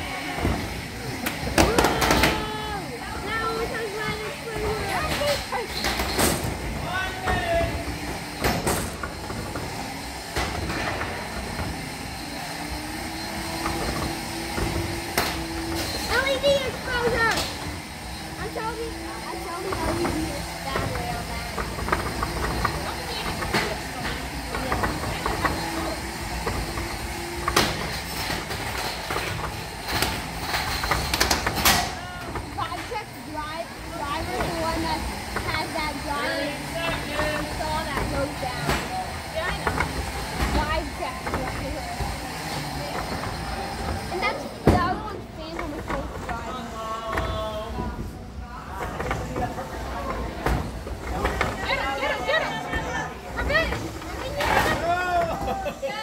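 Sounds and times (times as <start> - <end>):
spectators chattering: 0.0 - 10.3, 31.6 - 56.0.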